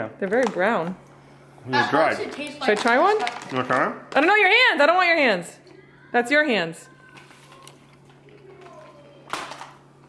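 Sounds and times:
quiet talking: 5.5 - 9.8.

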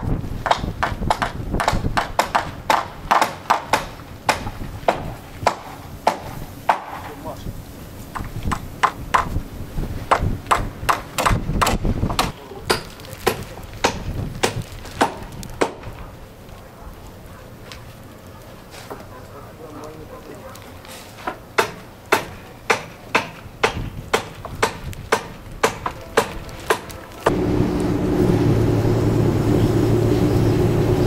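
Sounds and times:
low rumble: 27.3 - 31.0.

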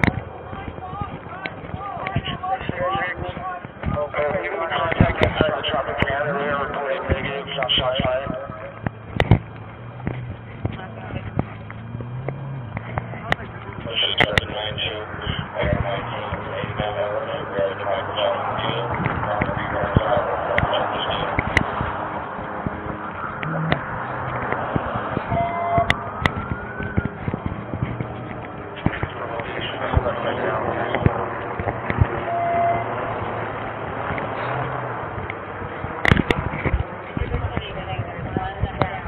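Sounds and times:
muffled voices: 0.0 - 39.0
rising tone: 9.4 - 13.5, 20.3 - 28.8
short beeps: 25.3 - 26.1, 32.2 - 32.9.

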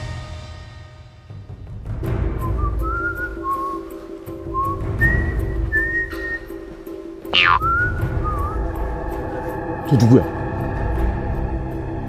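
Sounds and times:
background music with drone: 1.3 - 12.0
person whistling a tune: 2.4 - 6.7, 7.4 - 8.8.

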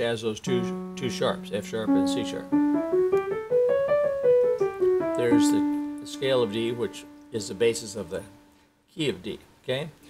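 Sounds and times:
piano playing a scale: 0.0 - 8.6.

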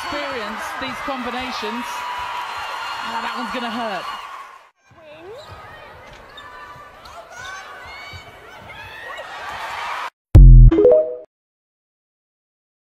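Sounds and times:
sneakers squeaking on floor: 4.9 - 9.2.

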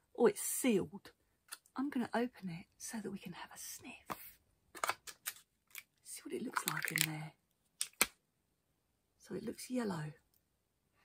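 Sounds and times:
jar lid clicks and crackles: 6.6 - 7.2.

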